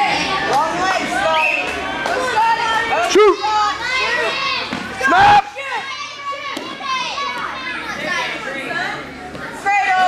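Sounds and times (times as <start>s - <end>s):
spectators shouting and yelling: 0.0s - 10.0s
loud shout: 0.2s - 8.3s.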